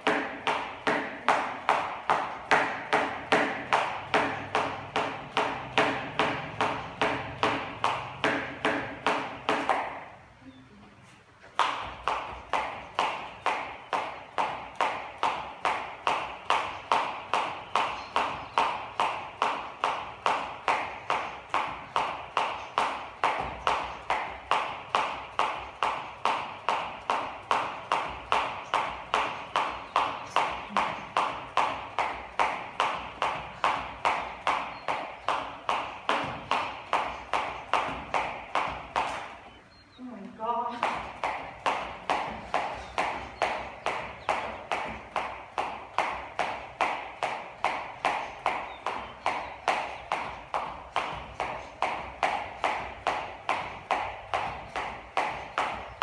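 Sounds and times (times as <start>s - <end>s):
jump rope slapping: 0.0s - 10.2s, 11.4s - 39.6s, 40.7s - 56.0s.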